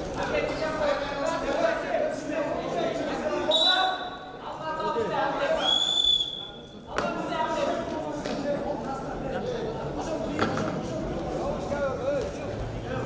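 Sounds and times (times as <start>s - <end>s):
voices in a hall: 0.0s - 13.0s
referee whistle blasts: 3.5s - 4.2s, 5.6s - 6.7s.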